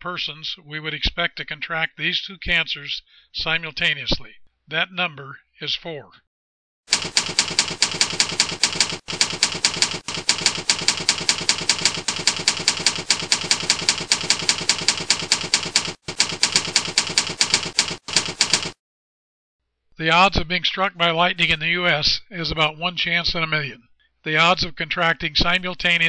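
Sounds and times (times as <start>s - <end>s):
typewriter keystroke clicks: 6.9s - 18.8s.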